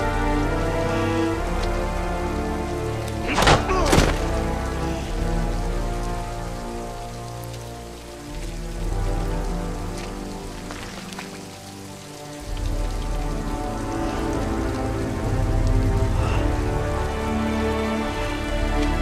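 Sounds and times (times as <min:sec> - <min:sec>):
heavy rain falling: 0:00.0 - 0:19.0.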